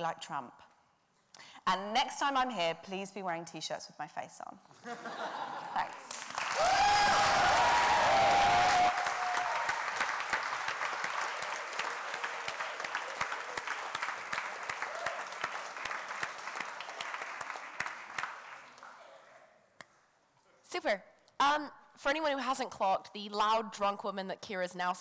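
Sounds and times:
audience applauding: 0:05.8 - 0:19.4.

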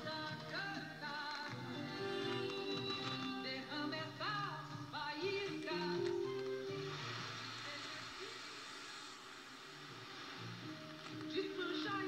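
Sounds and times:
pop song on am radio speaker: 0:00.0 - 0:08.9, 0:09.6 - 0:12.0.

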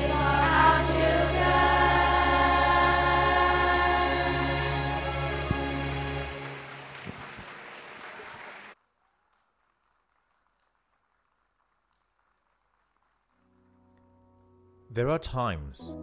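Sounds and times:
children's choir with backing music: 0:00.0 - 0:06.8.

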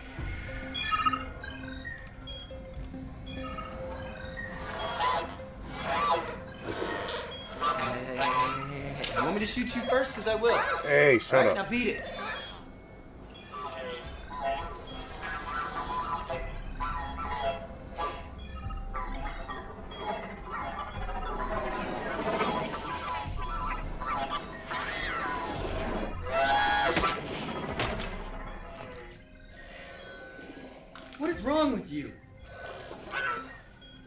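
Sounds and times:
film music score: 0:00.0 - 0:34.0.

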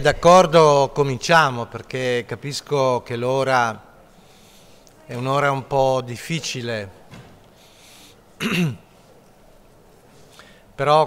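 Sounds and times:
man clearing throat: 0:08.4 - 0:08.9.

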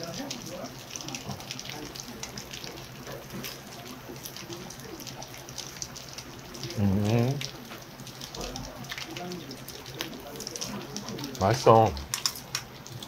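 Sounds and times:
food sizzling in a pan: 0:00.0 - 0:13.0.

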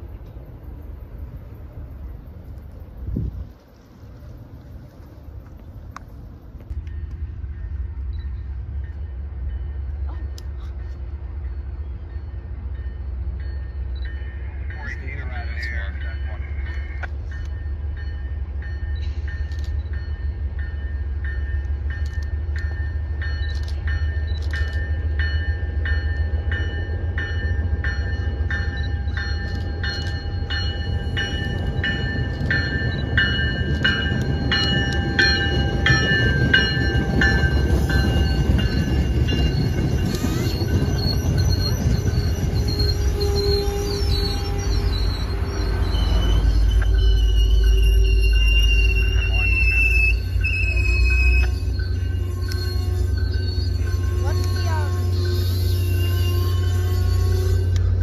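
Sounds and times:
train rumbling past: 0:00.0 - 0:58.0
train bell ringing: 0:06.7 - 0:58.0.

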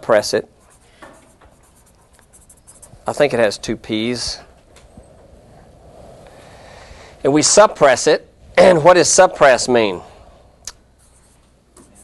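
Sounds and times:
writing scratching on a board: 0:00.6 - 0:03.4, 0:11.0 - 0:12.0.

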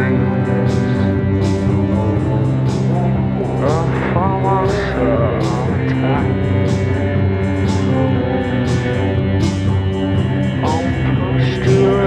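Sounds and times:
person singing: 0:00.0 - 0:06.9, 0:10.6 - 0:12.0
post-punk band playing live: 0:00.0 - 0:12.0.

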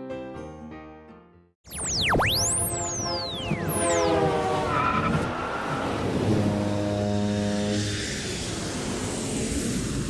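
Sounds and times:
rushing vehicle-like pass: 0:03.7 - 0:10.0.

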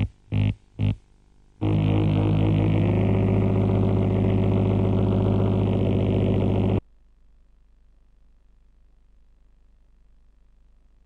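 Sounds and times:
low electronic buzz: 0:00.0 - 0:07.2
faint tape hiss: 0:00.0 - 0:11.0.

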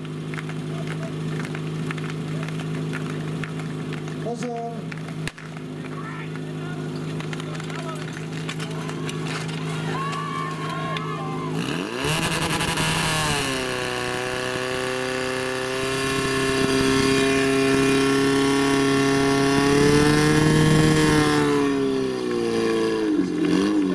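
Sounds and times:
pump engine revving: 0:00.0 - 0:23.9.

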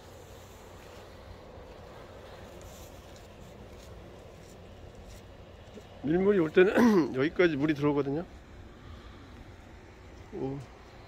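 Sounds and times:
distant surf: 0:00.0 - 0:11.0
wind: 0:00.0 - 0:11.0.

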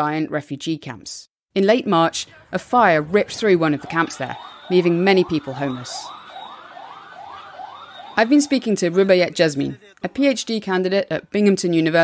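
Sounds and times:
emergency siren yelping: 0:02.3 - 0:09.3.

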